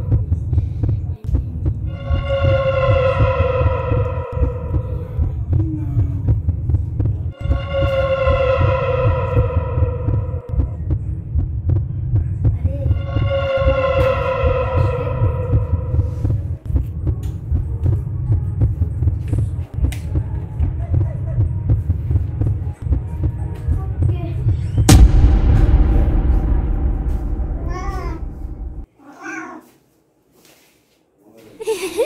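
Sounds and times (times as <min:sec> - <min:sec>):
throbbing heartbeat-like pulses: 0:00.0 - 0:19.1, 0:24.9 - 0:28.9
cat meowing: 0:29.0 - 0:29.7.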